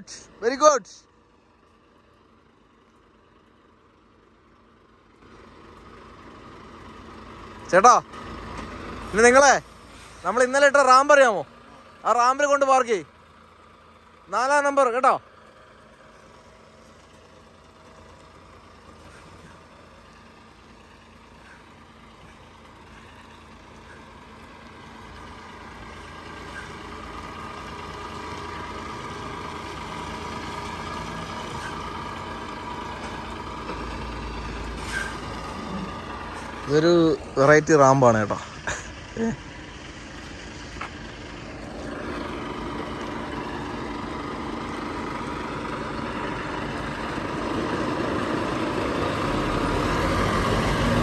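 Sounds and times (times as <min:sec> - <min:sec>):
truck diesel engine running: 0:00.0 - 0:51.0.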